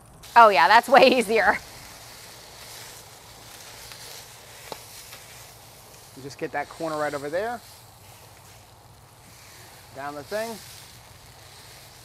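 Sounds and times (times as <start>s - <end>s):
water sizzling on hot griddle: 0.0s - 12.0s.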